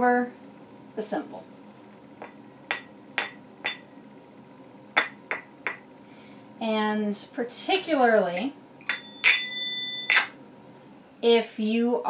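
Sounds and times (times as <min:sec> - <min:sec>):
finger cymbals ringing: 0:07.9 - 0:10.4.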